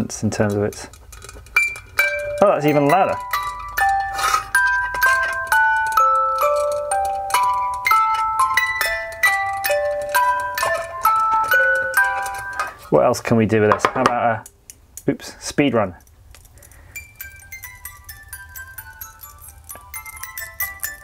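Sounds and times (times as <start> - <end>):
music box playing tune: 1.5 - 13.0, 16.7 - 21.0.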